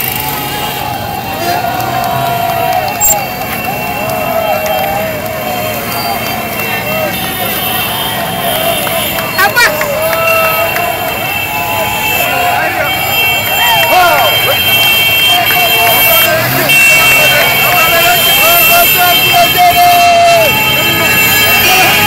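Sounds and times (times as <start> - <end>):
crowd cheering and shouting: 0.0 - 22.0
motorbike and car engines: 0.0 - 22.0
vehicle horns: 0.0 - 22.0.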